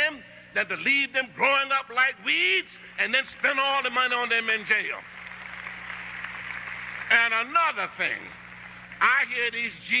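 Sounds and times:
low electrical hum: 0:00.0 - 0:10.0
audience applauding: 0:05.0 - 0:07.5, 0:08.2 - 0:09.2.

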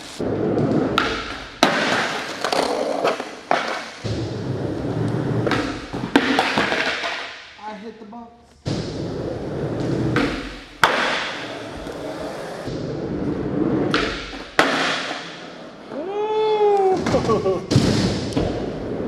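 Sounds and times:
skateboard wheels rolling: 0:00.0 - 0:07.2, 0:08.9 - 0:16.2, 0:17.9 - 0:19.0
skateboard popping and landing: 0:00.4 - 0:07.3, 0:08.7 - 0:16.0.

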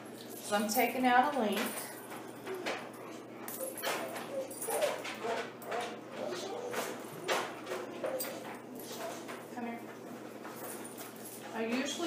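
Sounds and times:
metal collar links clinking: 0:00.2 - 0:05.8, 0:10.4 - 0:11.6
dog whimpering: 0:02.4 - 0:08.4.

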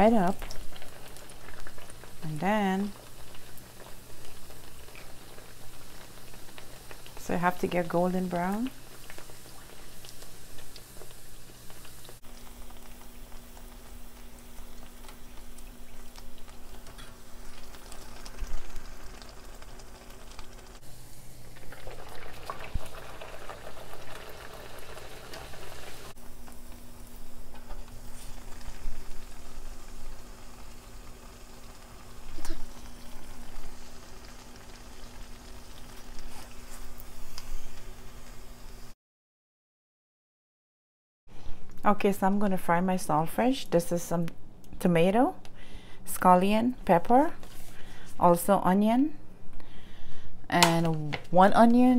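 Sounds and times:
oil sizzling and bubbling: 0:00.0 - 0:39.0.

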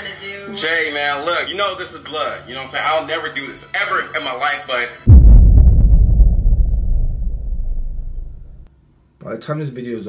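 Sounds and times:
deep boom: 0:05.1 - 0:08.7.

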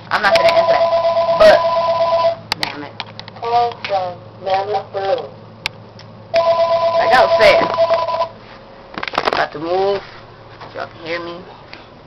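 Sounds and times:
phone ringing two notes: 0:00.2 - 0:02.4, 0:06.4 - 0:08.3.

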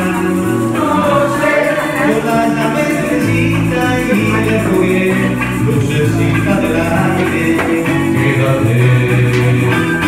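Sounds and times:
electric bass: 0:00.0 - 0:10.0
hand percussion: 0:00.0 - 0:10.0
people singing: 0:00.0 - 0:10.0
strummed guitar: 0:00.0 - 0:10.0.

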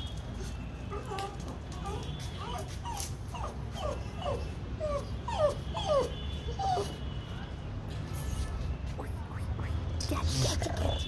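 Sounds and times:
dog whimpering: 0:00.9 - 0:07.0.

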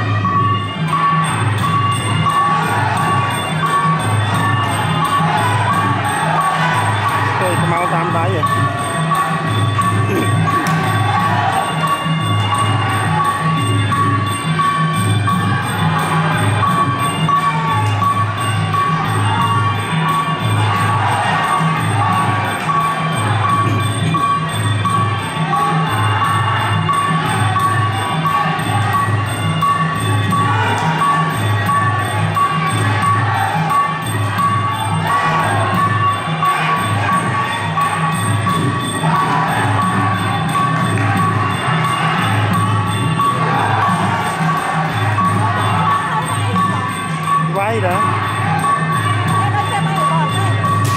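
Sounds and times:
crowd cheering: 0:00.0 - 0:50.9
drums beating a repeating pattern: 0:00.0 - 0:50.9.

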